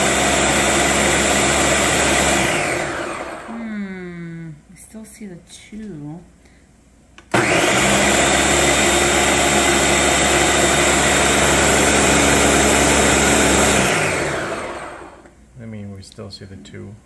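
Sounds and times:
blender running: 0:00.0 - 0:03.6, 0:07.3 - 0:15.3.

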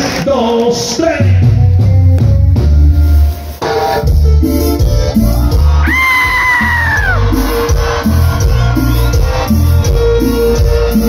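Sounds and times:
bass and drum beat: 0:01.1 - 0:11.0.

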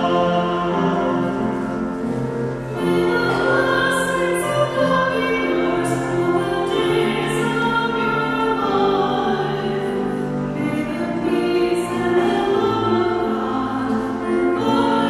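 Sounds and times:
grand piano accompaniment: 0:00.0 - 0:15.0.

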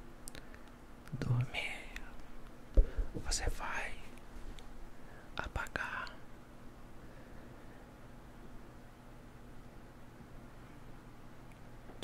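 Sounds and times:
whispering: 0:01.1 - 0:02.2, 0:03.2 - 0:04.2, 0:05.3 - 0:06.2.

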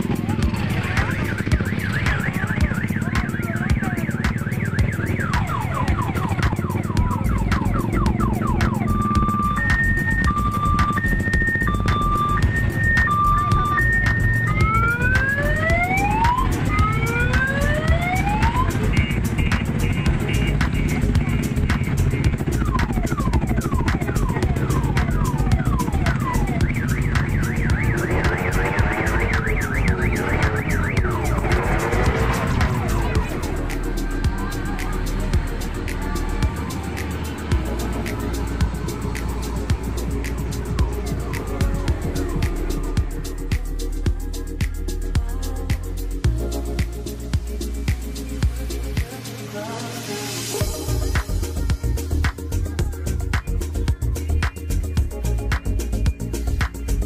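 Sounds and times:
electronic siren: 0:00.0 - 0:33.4
rapid electronic beeping: 0:00.0 - 0:43.7
motorcycle engines: 0:00.0 - 0:49.9
loudspeaker music: 0:00.0 - 0:57.0
sliding electronic tones: 0:00.7 - 0:33.8.

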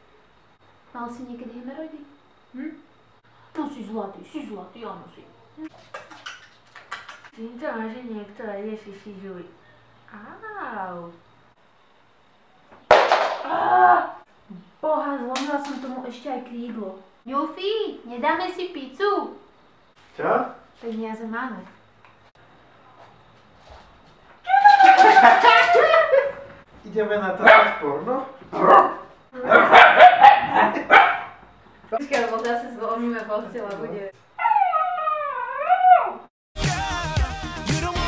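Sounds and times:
woman shrieking: 0:13.4 - 0:14.2, 0:24.4 - 0:25.9
dog barking: 0:27.4 - 0:27.9, 0:28.5 - 0:31.4.

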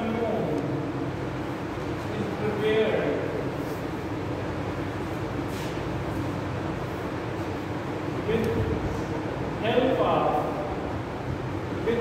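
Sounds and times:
room noise hum: 0:00.0 - 0:12.0.

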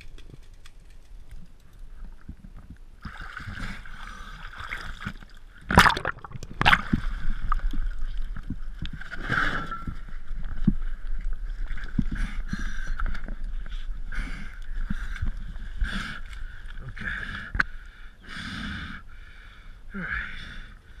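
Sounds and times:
water sloshing and splashing: 0:02.0 - 0:12.4.

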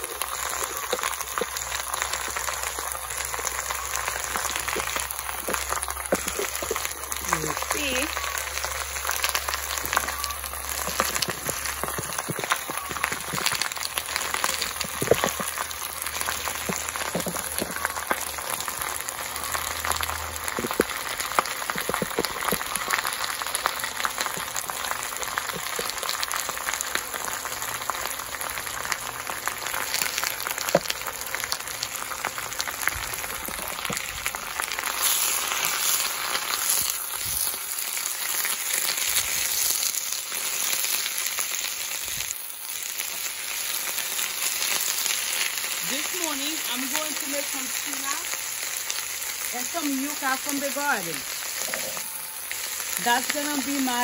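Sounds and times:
spinach sizzling in hot pan: 0:00.0 - 0:54.0.

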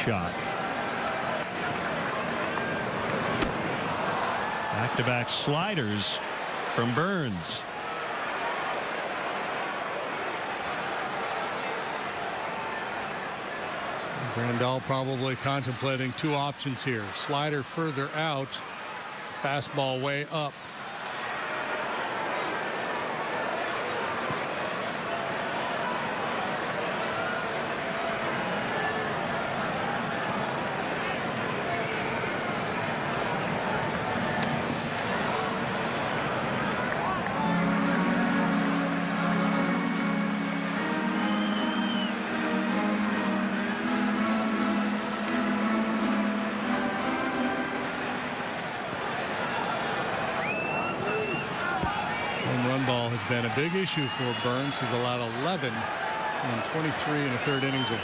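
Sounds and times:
murmur of crowd: 0:00.0 - 0:58.0
organ playing sustained chords: 0:37.2 - 0:48.8.

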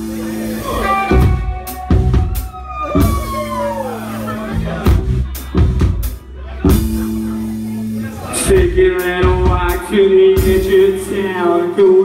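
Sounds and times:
heavy drum kit hits: 0:00.0 - 0:07.4
bass guitar notes: 0:00.0 - 0:12.0
live rock band playing: 0:00.0 - 0:12.0.

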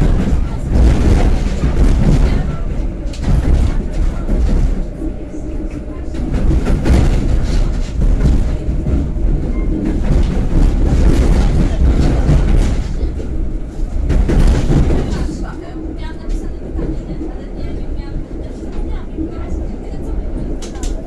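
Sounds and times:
wheels clattering over rail joints: 0:00.0 - 0:17.4
train wheels rumbling on rail: 0:00.0 - 0:21.0.

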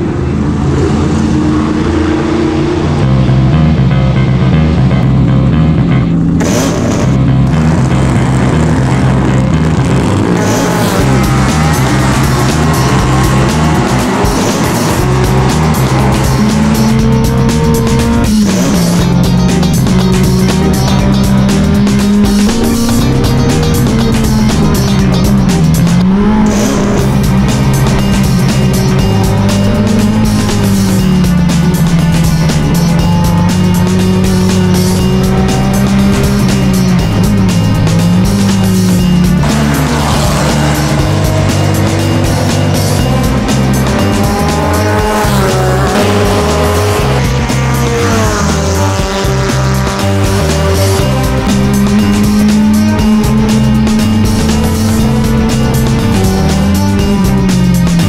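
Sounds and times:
music soundtrack: 0:00.0 - 0:58.0
race car engine: 0:00.0 - 0:58.0.

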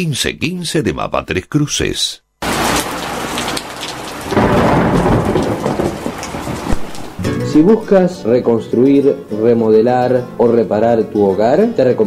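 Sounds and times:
steady rain: 0:02.4 - 0:07.2
thunder rumbling: 0:02.4 - 0:07.2.

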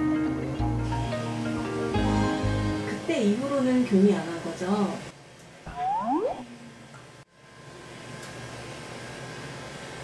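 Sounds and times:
room hiss and hum: 0:00.0 - 0:10.0
faint high steady tone: 0:05.7 - 0:06.6.

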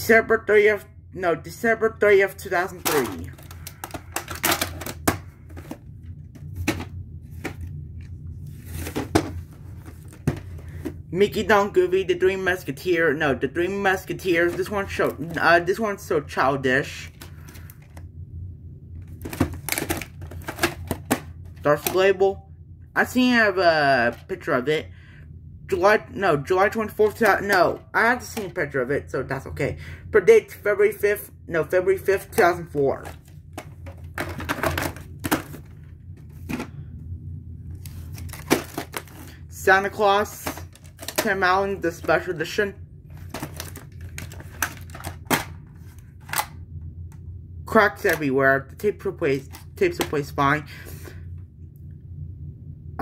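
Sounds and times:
plastic case clicks and rattles: 0:02.8 - 0:05.8, 0:19.2 - 0:22.0, 0:33.0 - 0:35.7, 0:38.2 - 0:39.2, 0:43.3 - 0:45.6.

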